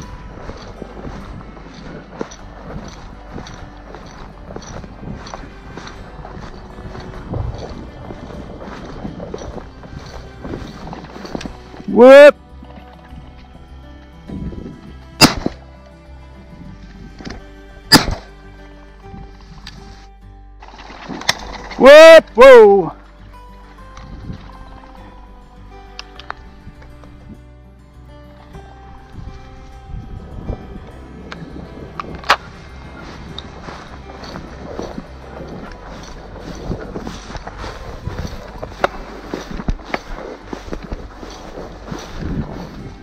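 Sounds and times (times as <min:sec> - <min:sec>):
wind on microphone: 0:00.0 - 0:11.9, 0:14.2 - 0:15.2, 0:16.4 - 0:17.5, 0:24.0 - 0:24.6, 0:29.0 - 0:43.0
background music: 0:00.0 - 0:43.0
footsteps through dry grass: 0:00.0 - 0:43.0
shotgun shots: 0:15.2 - 0:15.5, 0:17.9 - 0:18.3.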